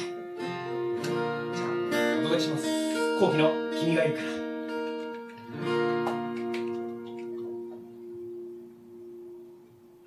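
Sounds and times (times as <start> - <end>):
acoustic guitar note ringing: 0.0 - 10.0.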